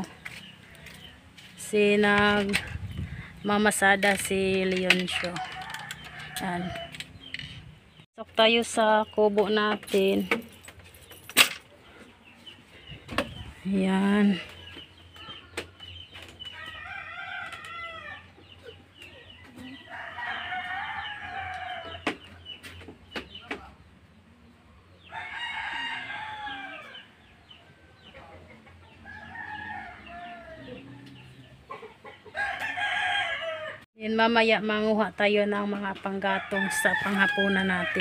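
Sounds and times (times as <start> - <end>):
roosters crowing: 4.6 - 7.6, 16.4 - 22.5, 25.0 - 33.9, 36.2 - 38.0.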